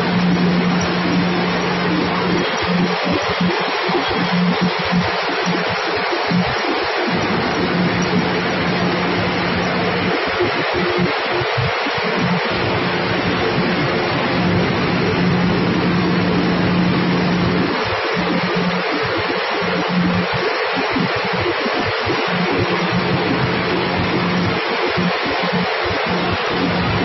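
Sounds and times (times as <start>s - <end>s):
low mechanical hum: 0.0s - 27.0s.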